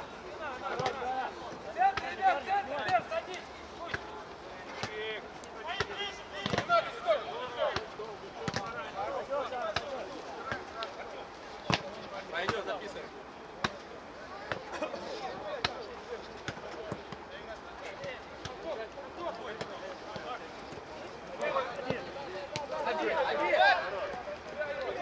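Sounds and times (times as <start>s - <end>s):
players shouting: 0.0s - 25.0s
ball being kicked: 7.7s - 8.8s.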